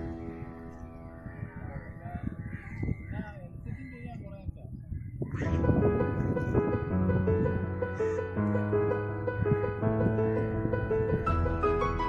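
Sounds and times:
distant calls: 0:00.0 - 0:09.7
low rumbling microphone noise: 0:00.0 - 0:12.0
background music: 0:05.6 - 0:12.0.

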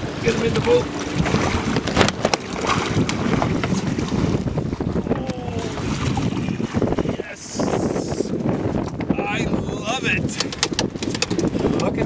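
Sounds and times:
wind noise: 0:00.0 - 0:12.0
person exclaiming: 0:05.1 - 0:05.8.

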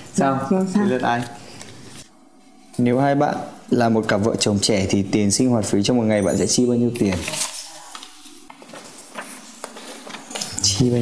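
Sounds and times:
paper cards rustling: 0:06.4 - 0:10.8.

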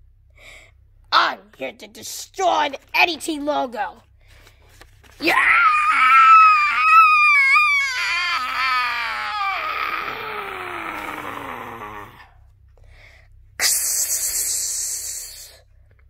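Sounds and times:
high-pitched squealing cry: 0:05.2 - 0:11.2.

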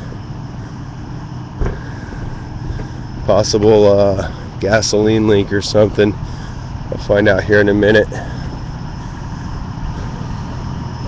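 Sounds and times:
vehicle engines idling: 0:00.0 - 0:11.0
soft thump: 0:01.6 - 0:01.8.

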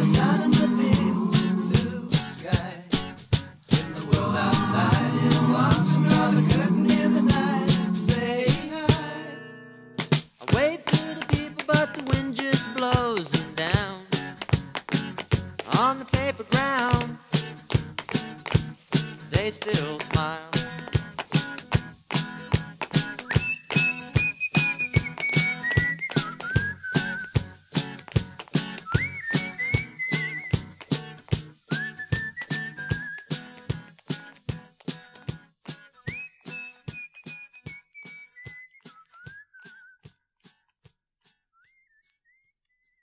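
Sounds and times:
rock band drum beat: 0:00.0 - 0:09.1, 0:10.0 - 0:18.3
high whistled melody: 0:04.1 - 0:09.7, 0:23.2 - 0:27.4, 0:28.8 - 0:30.6, 0:31.7 - 0:33.4, 0:36.0 - 0:40.0.

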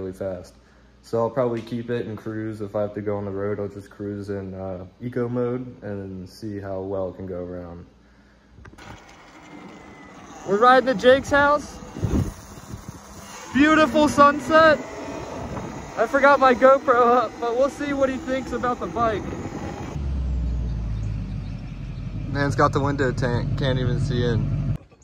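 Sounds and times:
electric motor whine: 0:08.7 - 0:20.0
pickup truck engine rumbling: 0:08.8 - 0:24.8
wind and tyre noise: 0:10.3 - 0:23.5.

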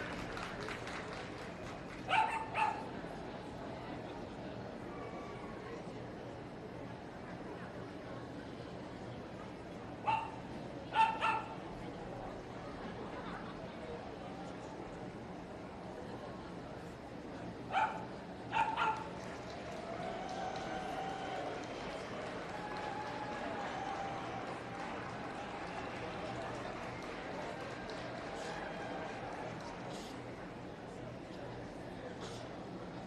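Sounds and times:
murmur of show hall crowd: 0:00.0 - 0:33.0
small dog barking: 0:02.1 - 0:02.8, 0:10.0 - 0:11.5, 0:17.7 - 0:19.1.

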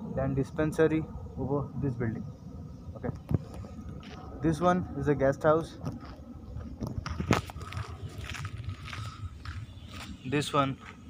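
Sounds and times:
footsteps: 0:03.2 - 0:04.7, 0:05.7 - 0:11.0.

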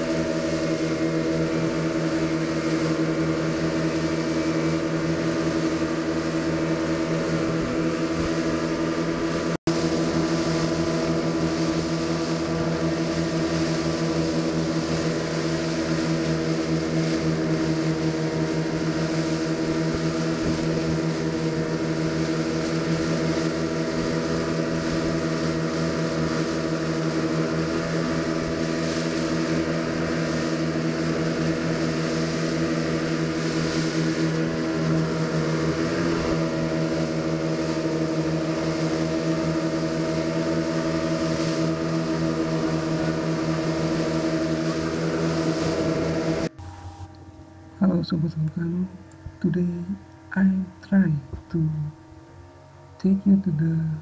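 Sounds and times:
wake spray: 0:00.0 - 0:47.1
water rushing past hull: 0:00.0 - 0:47.6
motorboat engine running: 0:00.0 - 0:54.0.

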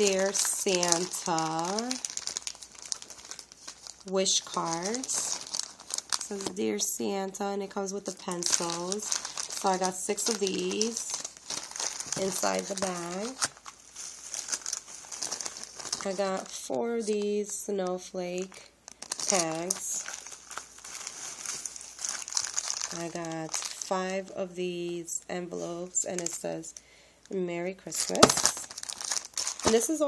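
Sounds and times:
plastic packaging crinkling: 0:00.0 - 0:26.6, 0:27.8 - 0:30.0.

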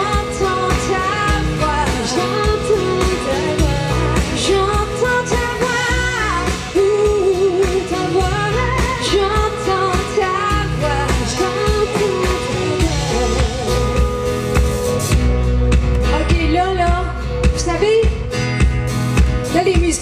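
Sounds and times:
woman singing lead: 0:00.0 - 0:15.0, 0:15.9 - 0:20.0
live pop-rock band: 0:00.0 - 0:20.0.

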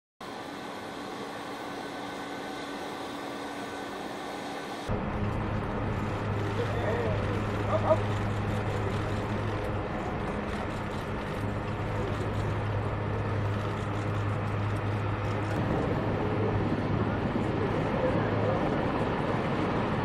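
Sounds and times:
engine hum with whining tones: 0:00.2 - 0:20.0.

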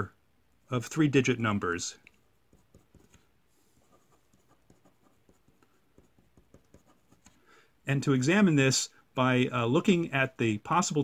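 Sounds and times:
marker pen writing: 0:02.2 - 0:07.4.

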